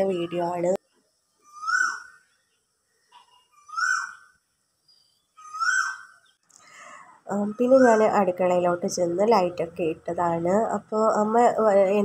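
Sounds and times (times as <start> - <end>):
bird calling: 1.3 - 8.2.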